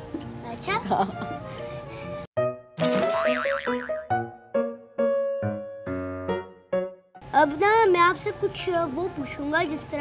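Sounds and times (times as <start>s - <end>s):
background music: 0.0s - 10.0s
wobbling cartoon sound effect: 2.8s - 4.0s.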